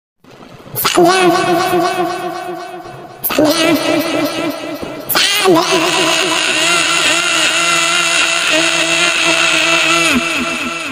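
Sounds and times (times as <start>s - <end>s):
person screaming: 0.8s - 10.9s.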